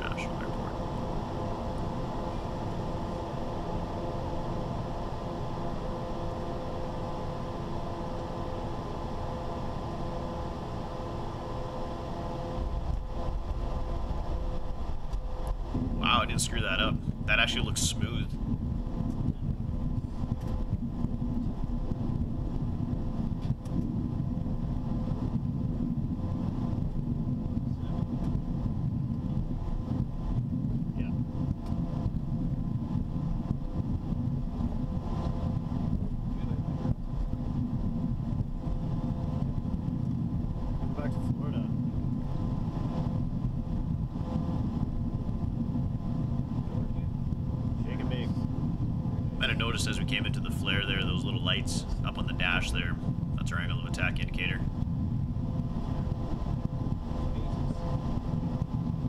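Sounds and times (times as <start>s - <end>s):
faint steady hum: 0.0s - 59.0s
jet rolling on runway rumble: 0.0s - 59.0s.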